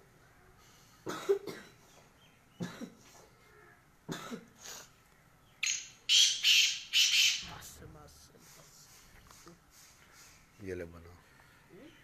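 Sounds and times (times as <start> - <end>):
bird giving harsh rasping call: 5.6 - 7.6.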